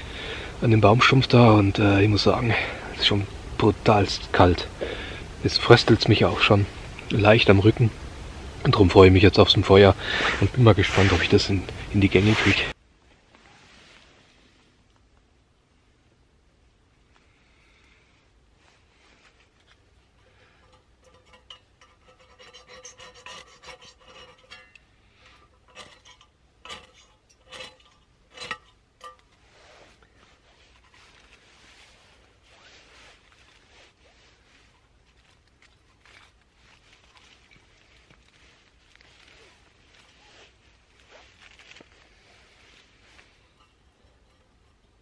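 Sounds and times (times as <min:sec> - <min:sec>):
scraping strikes of fire starter: 0:00.0 - 0:12.8, 0:19.2 - 0:45.0
tinder burning hiss: 0:00.0 - 0:45.0.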